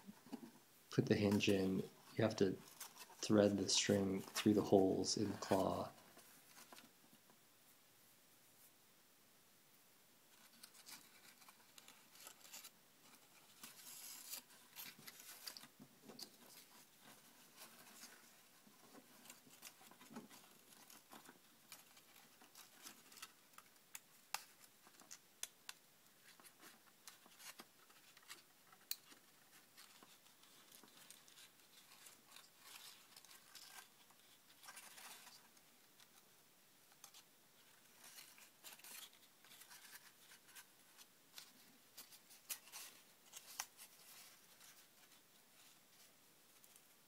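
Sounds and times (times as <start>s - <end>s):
rustling of cardstock: 0.0s - 7.0s, 10.3s - 47.0s.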